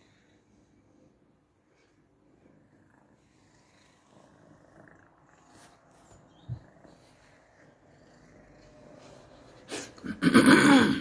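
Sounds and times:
cat purring faintly: 0.0 - 10.2.

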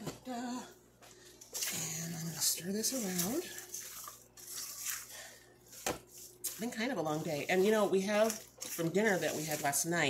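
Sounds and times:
spatula squishing and scraping in bowl: 1.4 - 10.0.

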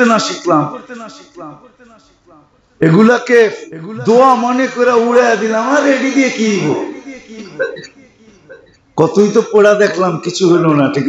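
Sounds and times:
man's drawn-out voice: 0.0 - 8.4.

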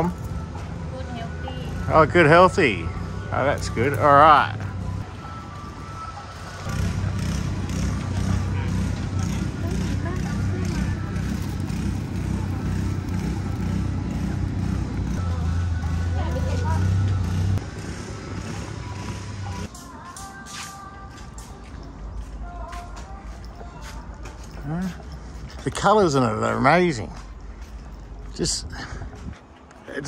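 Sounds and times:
low engine-like drone: 0.0 - 19.7
distant voices: 0.0 - 30.0
faint music: 0.0 - 30.0.

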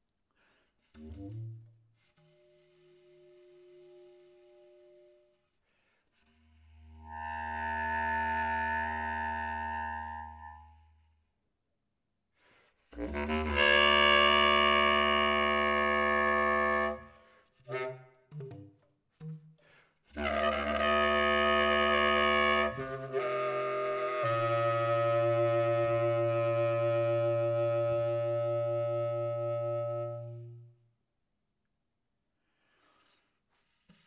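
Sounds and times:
clarinet low note: 6.5 - 11.0, 13.0 - 17.1, 20.2 - 30.8.

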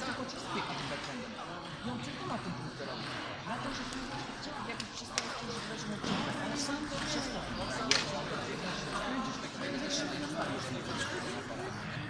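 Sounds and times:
echoing murmur of voices: 0.0 - 12.0.

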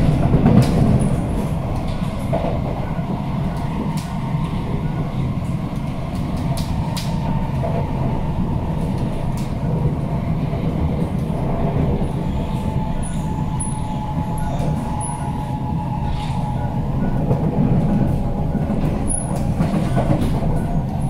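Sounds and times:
train wheels rumbling on track: 0.0 - 21.0.

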